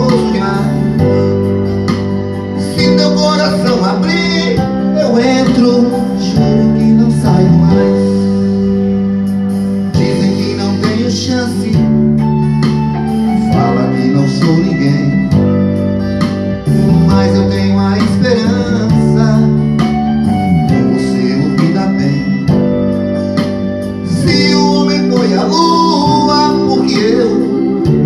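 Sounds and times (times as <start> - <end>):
electronic organ chords: 0.0 - 28.0.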